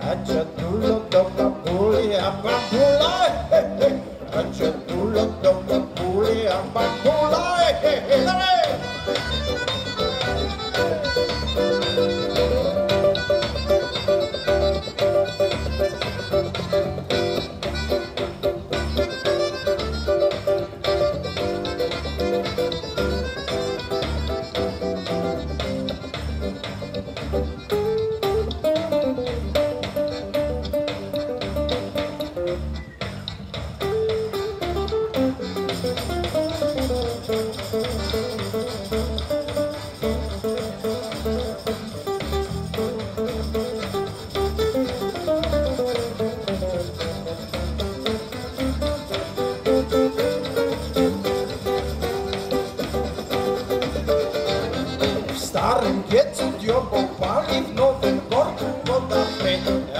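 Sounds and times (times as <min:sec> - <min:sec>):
accordion: 0:00.0 - 0:59.9
acoustic guitar: 0:00.0 - 0:59.9
electric bass guitar: 0:00.0 - 0:59.9.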